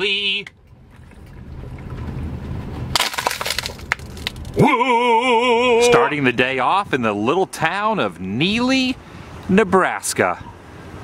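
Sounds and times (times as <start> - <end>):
low rumble: 0.6 - 4.7
plastic bottle crackling: 2.9 - 4.6.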